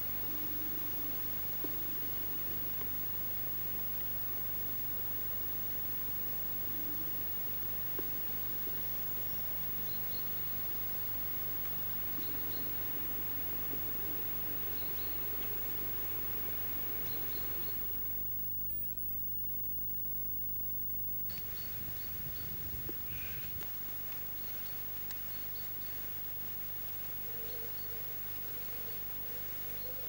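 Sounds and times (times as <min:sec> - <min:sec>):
tape hiss: 0:00.0 - 0:30.0
faint high chirps: 0:21.3 - 0:26.4
low hum: 0:21.3 - 0:29.7.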